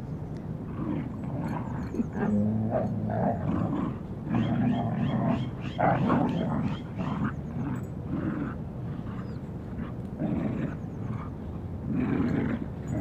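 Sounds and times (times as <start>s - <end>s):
dogs play-growling: 0.6s - 13.0s.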